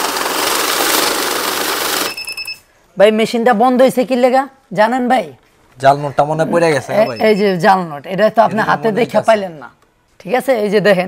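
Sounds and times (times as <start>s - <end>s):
bill counter whirring: 0.0s - 2.6s.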